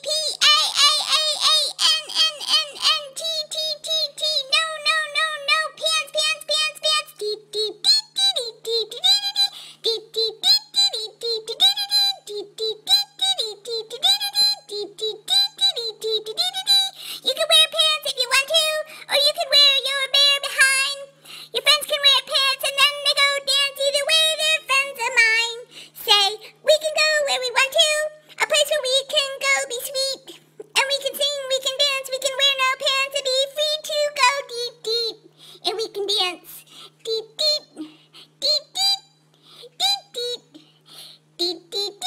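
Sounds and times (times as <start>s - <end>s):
high squeaky cartoon voice singing: 0.0s - 39.1s, 39.8s - 40.6s, 41.4s - 42.0s
faint low hum: 0.0s - 42.0s.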